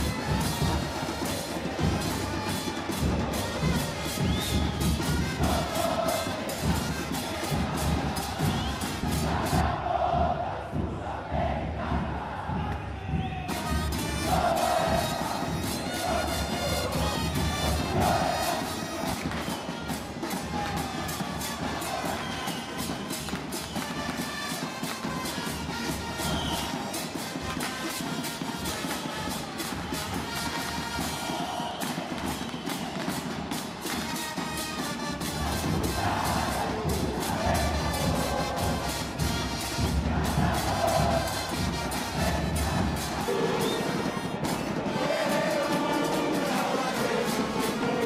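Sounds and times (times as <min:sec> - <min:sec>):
crowd: 0:00.0 - 0:48.0
horns or massed singing: 0:00.0 - 0:48.0
steady drumbeat: 0:00.0 - 0:48.0.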